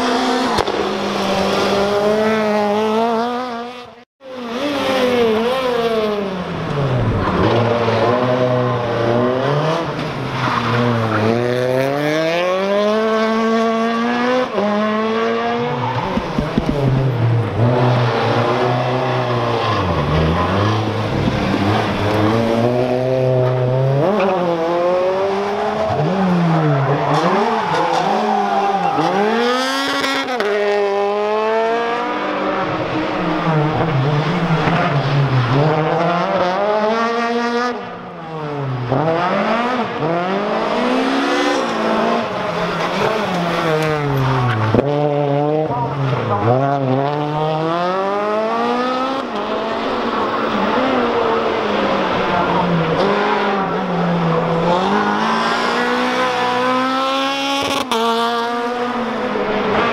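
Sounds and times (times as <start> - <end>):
rally car engines revving hard: 0.0 - 59.9
tyre squeal: 26.6 - 29.8.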